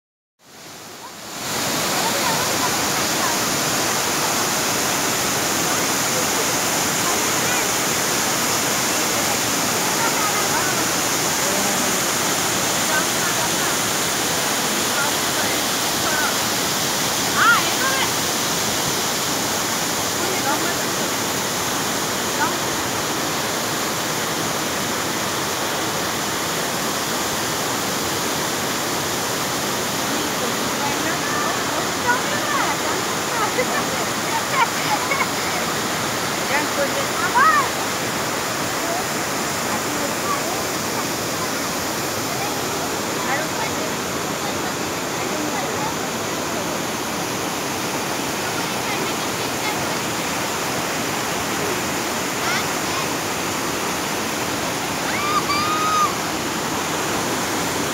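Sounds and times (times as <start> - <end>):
waterfall roaring over rocks: 0.4 - 57.9.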